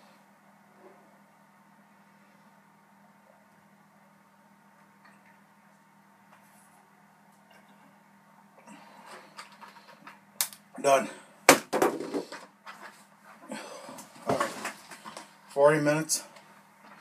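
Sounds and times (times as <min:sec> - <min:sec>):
man speaking: 0:10.8 - 0:11.2, 0:15.5 - 0:16.3.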